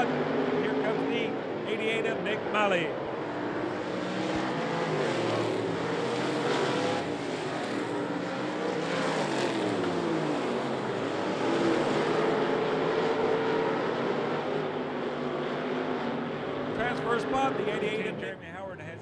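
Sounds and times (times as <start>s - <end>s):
race car engines passing: 0.0s - 19.0s.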